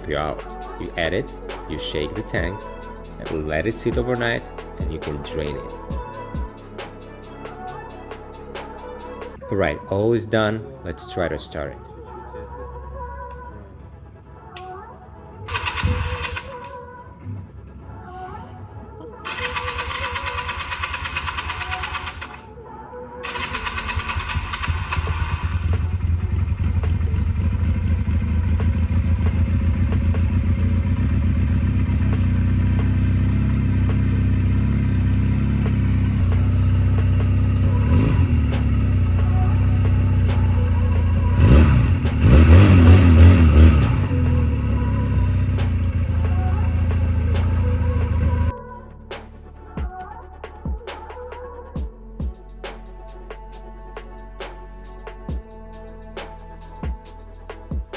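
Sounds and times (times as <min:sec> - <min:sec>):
motorcycle engine idling: 0:15.5 - 0:16.5, 0:19.3 - 0:22.3, 0:23.3 - 0:48.5
engine revving: 0:15.5 - 0:16.6, 0:23.3 - 0:48.5
electric starter cranking: 0:15.5 - 0:16.7, 0:19.3 - 0:22.4, 0:23.2 - 0:26.2.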